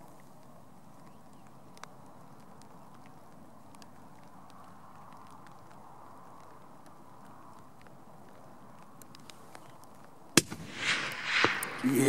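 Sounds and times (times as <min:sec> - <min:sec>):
rifle shot: 0:10.4 - 0:12.0
rising hiss: 0:10.4 - 0:12.0.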